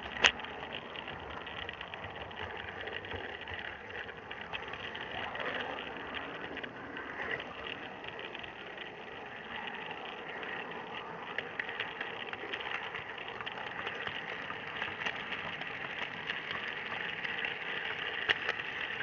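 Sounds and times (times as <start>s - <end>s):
model train wheels rattling on rails: 0.0s - 19.0s.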